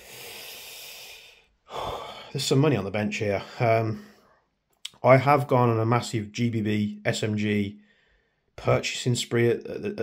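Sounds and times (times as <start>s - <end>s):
man breathing out: 0.0s - 2.4s
man speaking: 2.3s - 4.2s, 4.8s - 7.8s, 8.6s - 10.0s.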